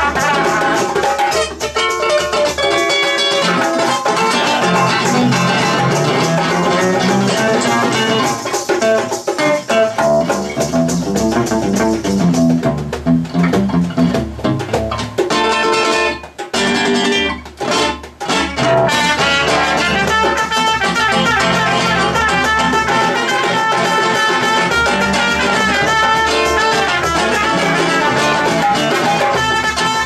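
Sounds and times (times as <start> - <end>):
trumpet melody: 0.0 - 8.3, 18.6 - 30.0
classical guitar picking rapid notes: 0.0 - 30.0
hand percussion: 0.0 - 30.0.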